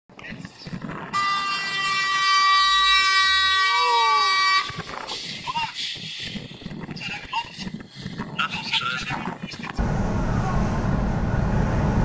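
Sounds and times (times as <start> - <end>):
truck air horn blast: 1.2 - 4.9.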